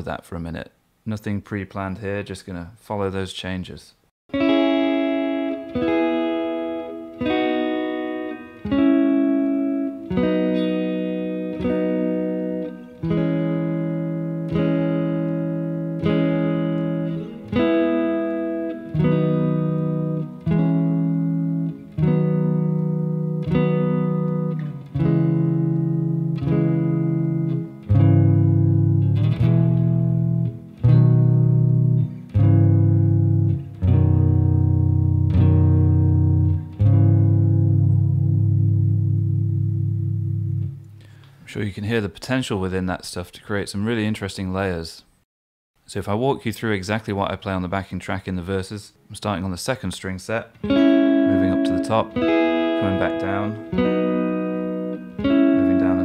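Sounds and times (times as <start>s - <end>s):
clean electric guitar chords: 4.3s - 41.3s, 50.6s - 56.0s.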